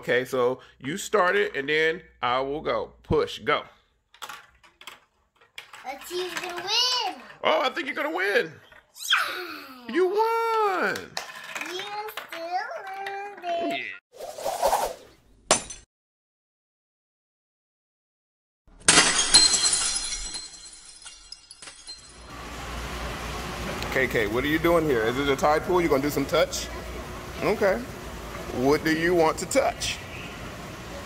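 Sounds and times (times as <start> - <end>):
marbles clacking down plastic track: 11.0 - 13.6
glass shattering: 15.5 - 15.9, 18.7 - 22.3.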